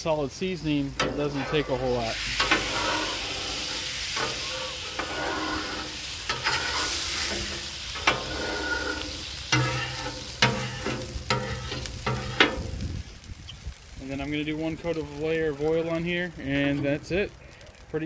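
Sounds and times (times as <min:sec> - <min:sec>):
water sizzling on hot griddle: 0:00.0 - 0:18.0
metal scraper scraping steel: 0:02.4 - 0:12.7.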